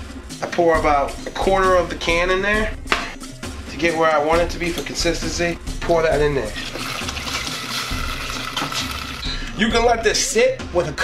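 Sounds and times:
liquid pouring and splashing: 0:06.5 - 0:09.3.

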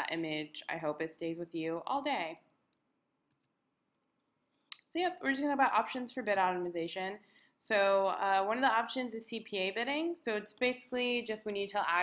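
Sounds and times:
woman speaking: 0:00.0 - 0:02.5, 0:04.7 - 0:12.0.

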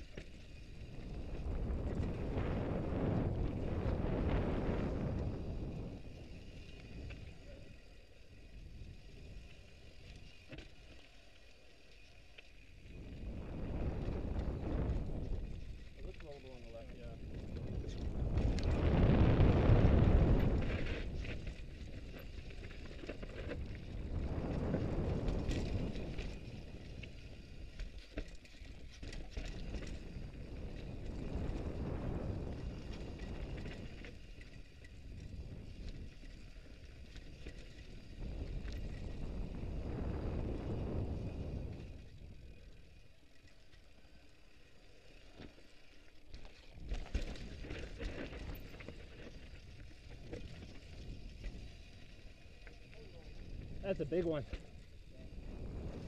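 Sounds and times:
wind rumbling on microphone: 0:00.0 - 0:10.6, 0:12.6 - 0:44.1, 0:44.8 - 0:56.0
bike rattling: 0:00.0 - 0:56.0.

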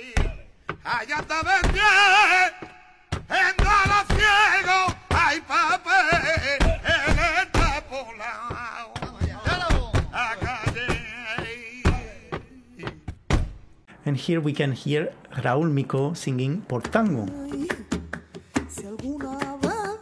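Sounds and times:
man singing flamenco: 0:00.0 - 0:13.1, 0:16.8 - 0:17.8
sharp rhythmic knocks: 0:00.0 - 0:13.9, 0:16.7 - 0:20.0.

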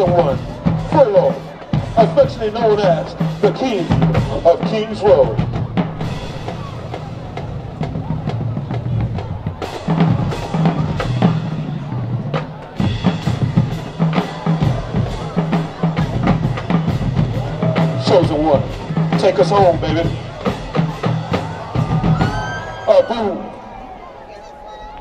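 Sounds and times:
bass drums: 0:00.0 - 0:23.9.

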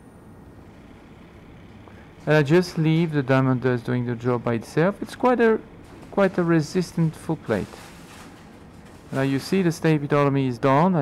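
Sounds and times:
suction running: 0:00.5 - 0:09.9.

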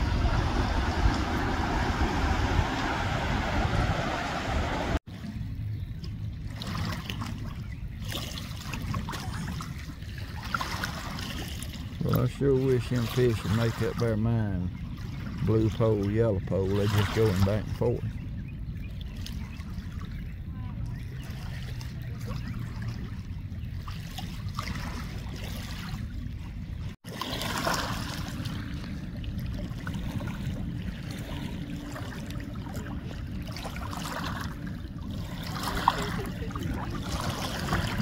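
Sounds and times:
water rushing from dam: 0:00.0 - 0:05.0
low river rumble: 0:00.0 - 0:38.0.

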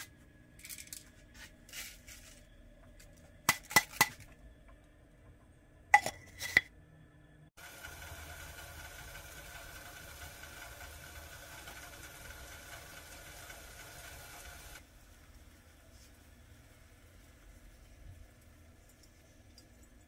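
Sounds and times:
kettle hissing with high tone: 0:07.5 - 0:20.0.

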